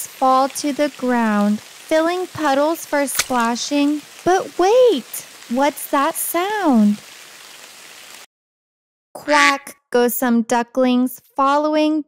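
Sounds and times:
falling rain hiss: 0.0 - 8.3.

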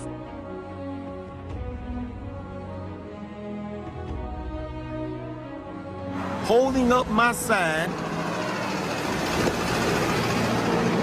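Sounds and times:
road traffic passing: 6.1 - 11.0.

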